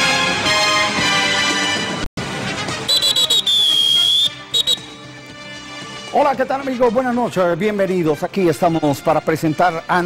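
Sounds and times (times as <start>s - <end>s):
whistle blasts: 2.8s - 5.2s
soft background music: 4.2s - 10.0s.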